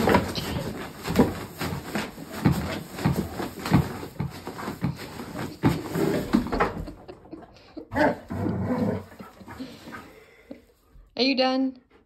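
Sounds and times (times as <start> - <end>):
scuffling: 0.0 - 7.0.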